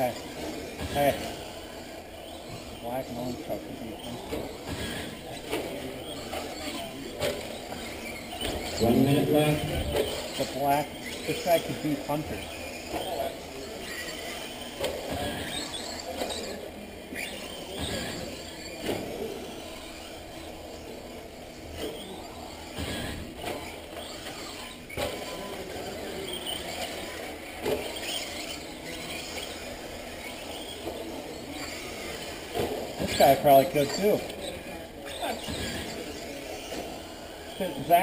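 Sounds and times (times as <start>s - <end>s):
toy car motors whining: 0.0s - 38.0s.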